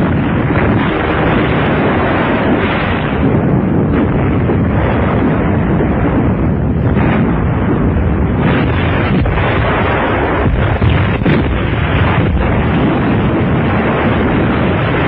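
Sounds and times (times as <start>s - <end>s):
artillery fire and shell explosions: 0.0s - 15.0s.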